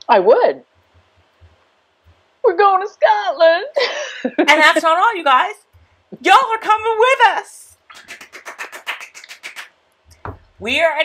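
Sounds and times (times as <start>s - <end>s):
person clapping quickly: 7.9s - 10.4s.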